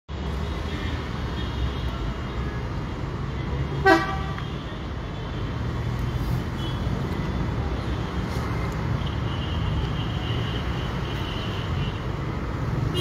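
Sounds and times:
low city rumble: 0:00.1 - 0:13.0
vehicle horn toot: 0:03.8 - 0:04.4.

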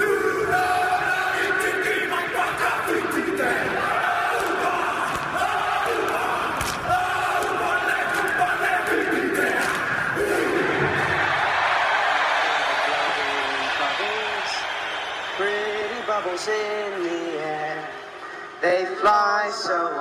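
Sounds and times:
football crowd chanting: 0:00.0 - 0:18.4
crowd noise: 0:00.0 - 0:20.0.

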